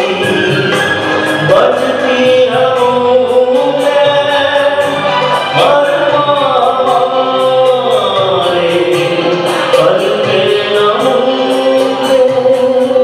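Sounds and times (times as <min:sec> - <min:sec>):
electric guitar: 0:00.0 - 0:13.0
man singing through a pa: 0:00.0 - 0:13.0.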